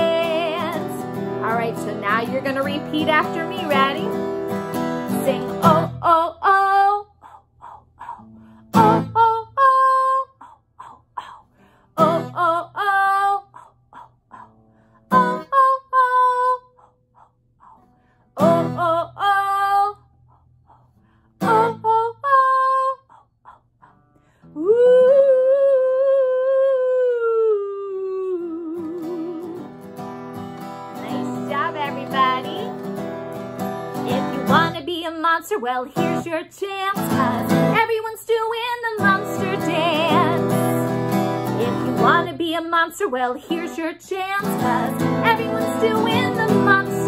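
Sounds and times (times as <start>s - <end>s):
strummed acoustic guitar: 0.0s - 6.6s, 8.2s - 9.3s, 12.0s - 12.6s, 17.8s - 19.2s, 29.0s - 35.1s, 35.9s - 37.9s, 38.9s - 42.6s, 43.2s - 47.0s
woman singing: 0.0s - 30.0s, 30.9s - 47.0s.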